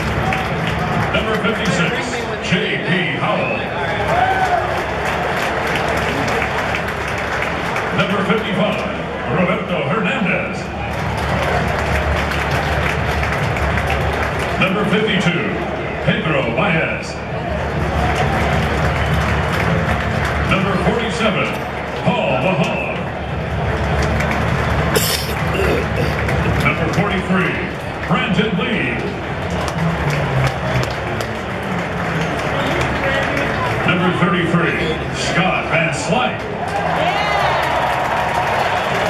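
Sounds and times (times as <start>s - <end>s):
stadium crowd applauding and cheering: 0.0s - 39.0s
music over public-address system: 9.8s - 36.2s.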